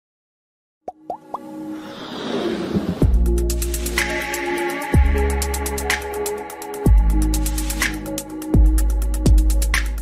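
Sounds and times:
intro music: 0:01.2 - 0:10.0
swelling riser: 0:01.7 - 0:03.5.

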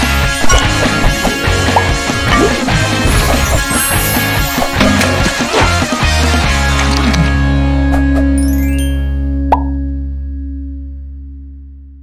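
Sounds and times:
jingle closing chord ringing: 0:08.4 - 0:09.5.

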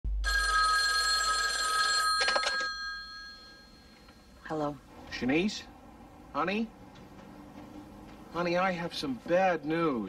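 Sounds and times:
telephone ringing: 0:00.2 - 0:04.5.

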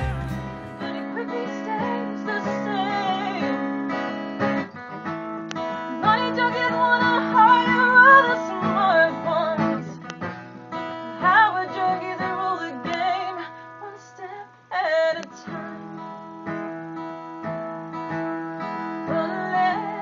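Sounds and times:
woman singing: 0:00.0 - 0:03.6, 0:05.9 - 0:10.0, 0:11.0 - 0:16.0, 0:18.9 - 0:20.0
acoustic guitar strumming: 0:00.0 - 0:13.8, 0:15.3 - 0:20.0.

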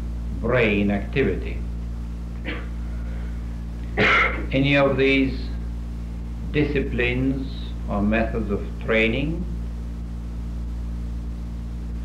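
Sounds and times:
low hum: 0:00.0 - 0:12.0.

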